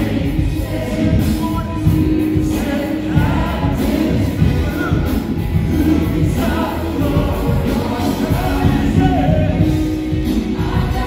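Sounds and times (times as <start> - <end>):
worship band with singers: 0.0 - 11.0.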